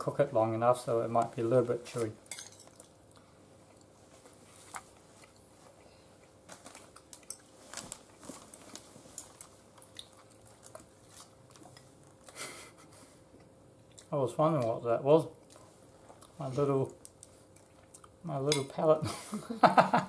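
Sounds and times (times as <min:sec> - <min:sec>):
person chewing: 0:02.6 - 0:12.5, 0:13.3 - 0:14.1, 0:15.4 - 0:16.4, 0:17.0 - 0:18.2.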